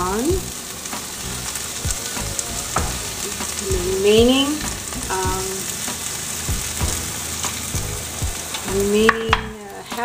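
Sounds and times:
onions sizzling in a pan: 0:00.0 - 0:10.0.

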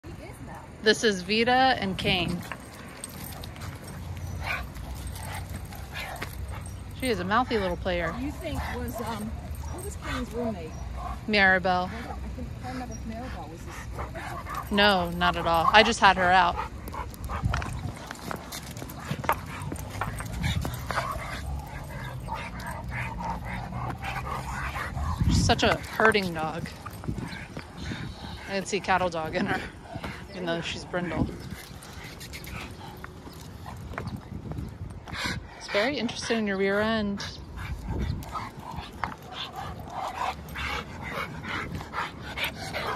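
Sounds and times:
dogs play noises: 0:00.0 - 0:42.9.

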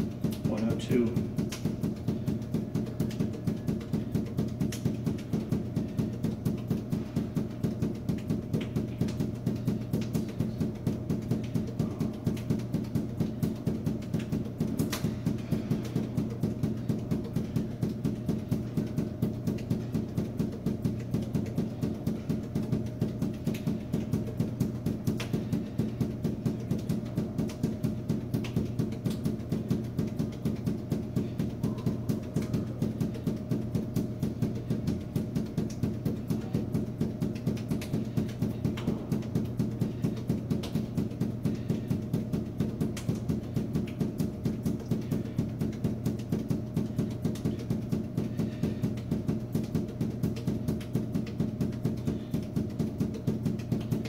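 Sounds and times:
balls bouncing on a hard floor: 0:00.0 - 0:54.0
steady low hum: 0:00.0 - 0:54.0.

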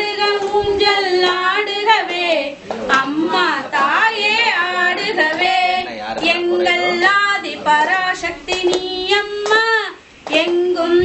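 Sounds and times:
woman singing devotional song: 0:00.0 - 0:11.0
hand claps: 0:02.1 - 0:03.5, 0:04.9 - 0:05.6, 0:08.2 - 0:11.0.

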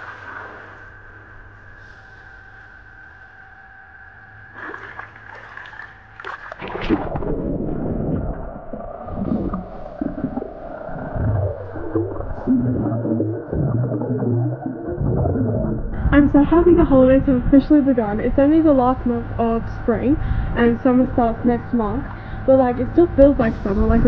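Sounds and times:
faint underwater hum: 0:00.0 - 0:24.0
underwater gurgling and bubbling: 0:04.6 - 0:24.0.

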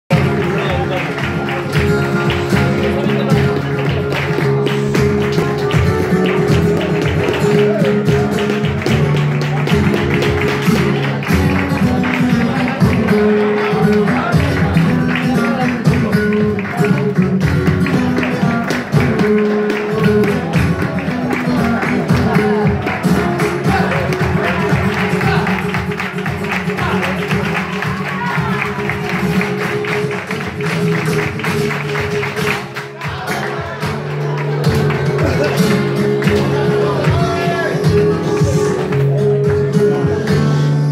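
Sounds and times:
flamenco guitar strumming: 0:00.1 - 0:40.9
rhythmic hand clapping: 0:00.1 - 0:40.9.

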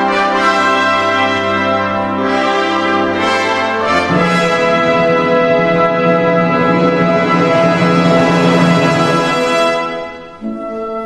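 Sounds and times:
orchestral brass chords: 0:00.0 - 0:11.0.

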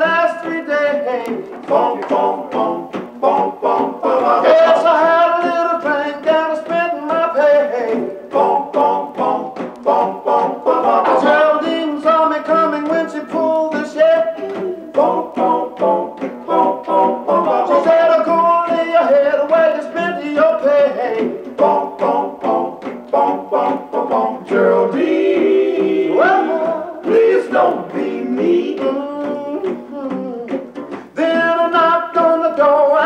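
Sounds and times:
male vocal group singing harmony: 0:00.0 - 0:33.0.

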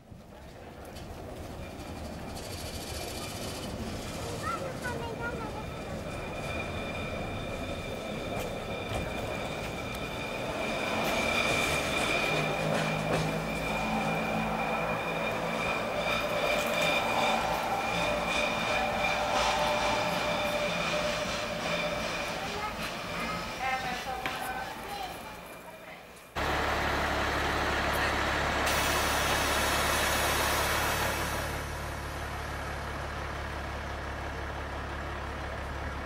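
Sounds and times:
electric railcar whining: 0:00.0 - 0:36.0.

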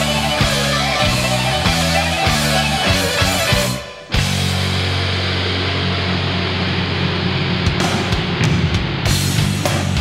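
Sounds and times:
distorted electric guitar and bass chord: 0:00.0 - 0:10.0.

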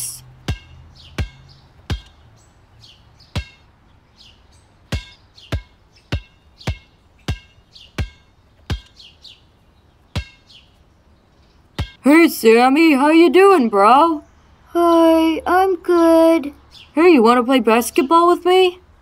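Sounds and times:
birds chirping: 0:00.0 - 0:19.0
basketball bouncing on court: 0:00.4 - 0:02.2, 0:03.4 - 0:03.6, 0:04.9 - 0:09.0, 0:11.8 - 0:12.0.

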